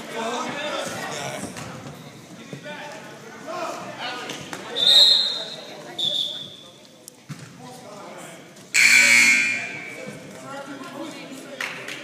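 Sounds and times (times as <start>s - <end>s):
referee's whistle blasts: 4.8s - 6.6s, 8.8s - 10.0s.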